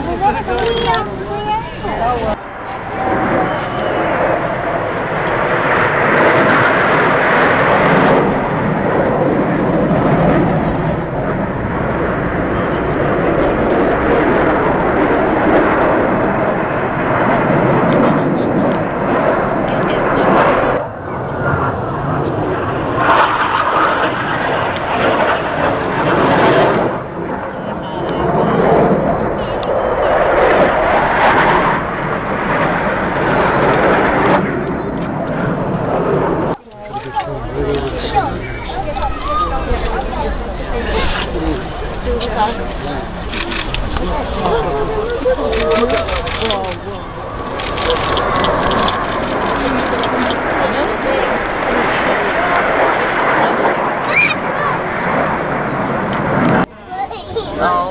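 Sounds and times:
jet roar overhead: 0.0 - 57.9.

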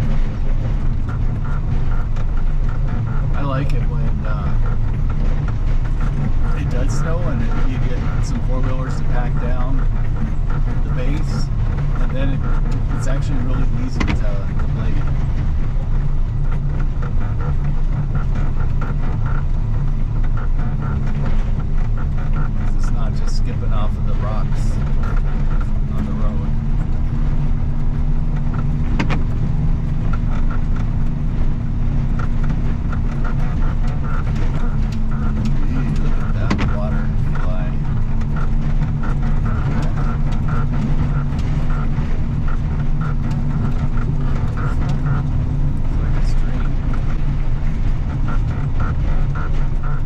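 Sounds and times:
snow plow engine drone: 0.0 - 50.0
steady hum: 0.0 - 50.0
sharp knocks: 28.3 - 31.2.

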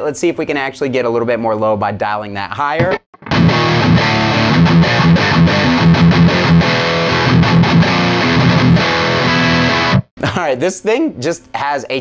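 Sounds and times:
distorted electric guitar riff: 2.8 - 10.1.

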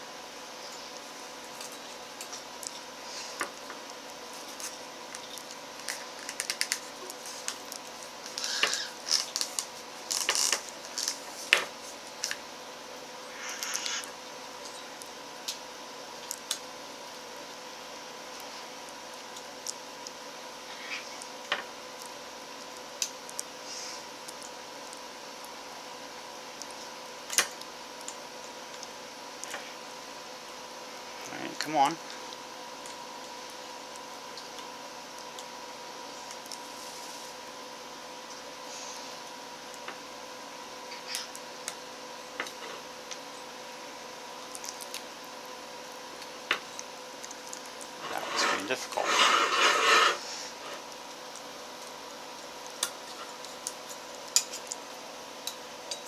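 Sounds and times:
faint steady hum: 0.0 - 56.0
metal clicks and scrapes: 48.0 - 50.8.

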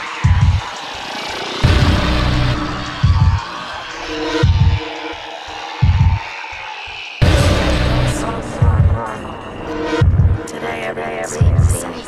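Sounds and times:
deep bass hits: 1.6 - 3.4, 7.2 - 9.1, 10.0 - 10.4
short synth stabs: 7.2 - 9.1.

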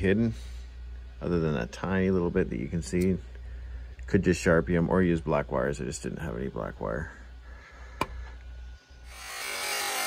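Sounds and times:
toy truck motor whirring: 9.1 - 10.0.

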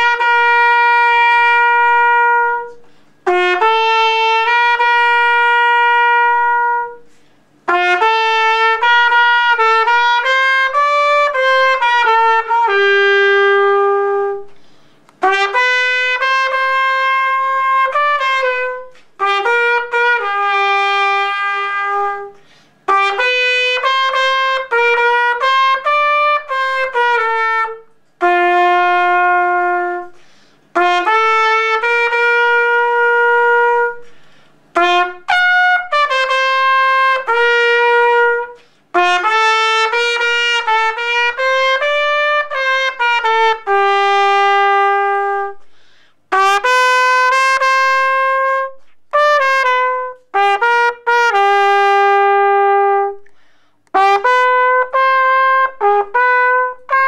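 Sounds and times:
trumpet playing slow melody: 0.0 - 57.0.

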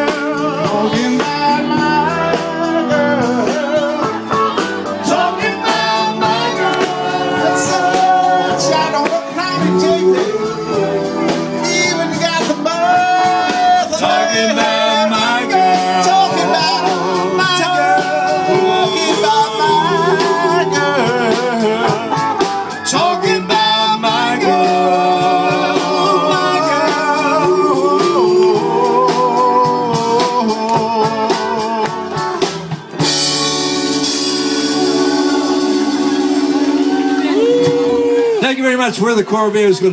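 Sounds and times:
person singing: 0.0 - 32.4
drums: 0.0 - 39.9
guitar: 0.0 - 39.9.

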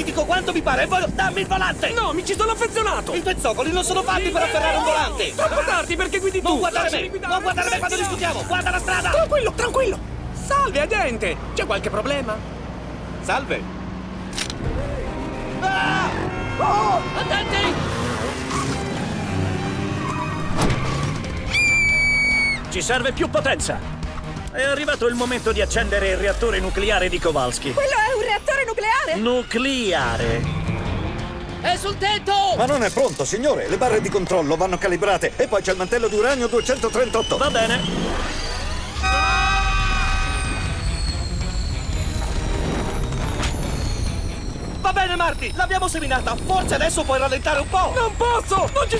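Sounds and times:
film score music: 14.0 - 48.9
high steady shrill tone: 21.5 - 22.6, 33.6 - 48.9.

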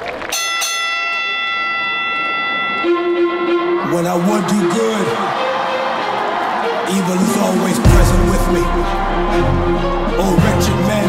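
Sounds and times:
chime-like synth tone: 0.4 - 4.0.

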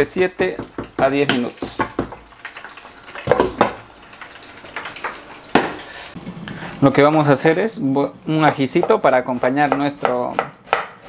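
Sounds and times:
cooking pot and utensils clattering: 0.4 - 5.9.

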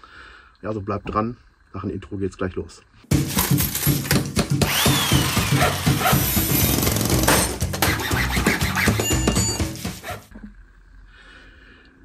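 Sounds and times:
music: 3.1 - 10.3
power drill drilling: 4.6 - 7.4
sawing: 4.6 - 10.3.

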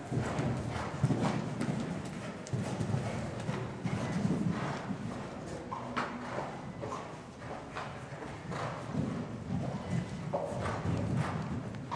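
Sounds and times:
horse hoofbeats on sand: 0.0 - 11.9.

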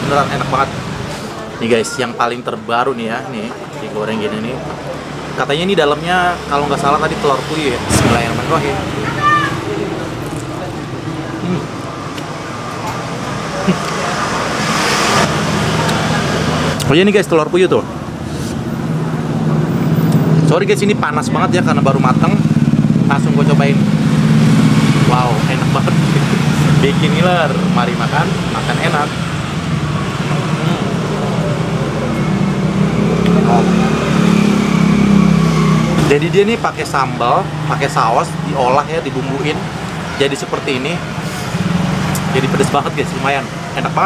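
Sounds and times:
street traffic hum: 0.0 - 44.0
vehicle passing: 5.0 - 44.0.

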